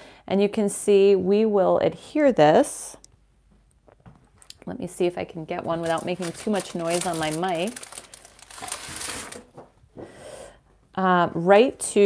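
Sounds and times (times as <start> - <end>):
card crinkling and rustling: 5.7 - 9.8.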